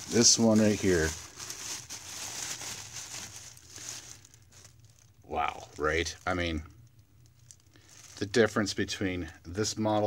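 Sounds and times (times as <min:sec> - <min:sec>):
plastic trash bag crinkling: 0:00.0 - 0:10.0.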